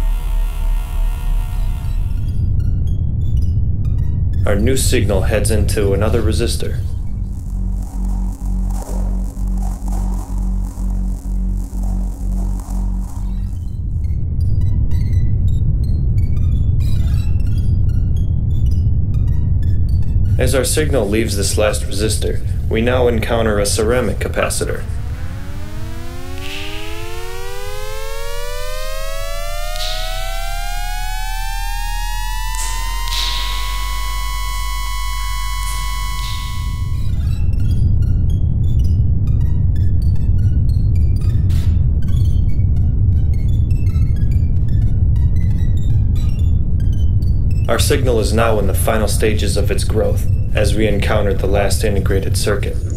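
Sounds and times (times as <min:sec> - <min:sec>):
synthesized gliding tone: 0:00.0 - 0:02.7, 0:05.4 - 0:14.6, 0:20.3 - 0:37.8
loud low rumble: 0:00.0 - 0:16.3, 0:19.0 - 0:38.2
pulsing deep buzzing drone: 0:00.0 - 0:52.9
steady low hum: 0:00.0 - 0:52.9
short clicks: 0:32.5 - 0:33.8.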